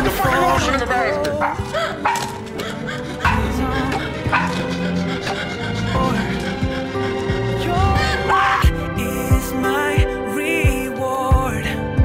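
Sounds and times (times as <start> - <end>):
pop song music: 0.0 - 12.0
small dog barking: 1.4 - 2.4.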